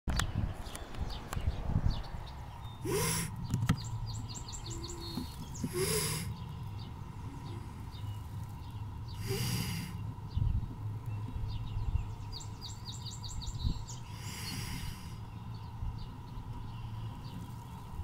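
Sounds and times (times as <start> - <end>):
duck hissing: 2.8 - 3.4, 4.8 - 6.4, 9.2 - 10.0, 14.1 - 15.2.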